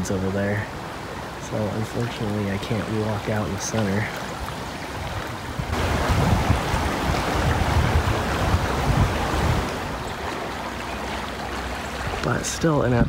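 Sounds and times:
stream rushing over rapids: 0.0s - 13.0s
wind rumbling on microphone: 0.0s - 13.0s.

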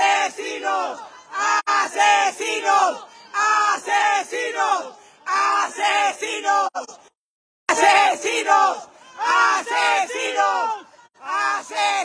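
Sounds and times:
protesters chanting in unison: 0.0s - 7.1s, 7.7s - 12.0s.

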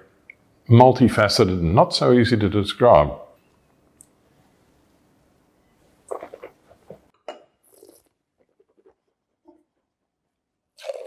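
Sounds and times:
wet slurping: 6.1s - 9.1s, 10.8s - 11.0s.

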